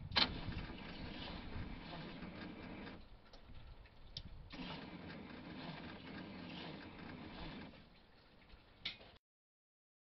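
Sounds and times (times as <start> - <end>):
engine turning over: 4.5 - 7.8.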